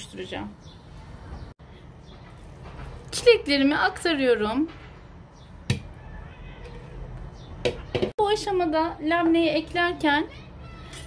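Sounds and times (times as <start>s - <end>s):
kitchen room noise: 0.0s - 11.0s.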